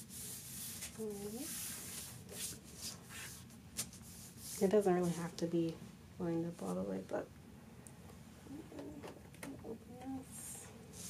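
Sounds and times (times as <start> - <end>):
hands rubbing cardstock: 0.0 - 5.2.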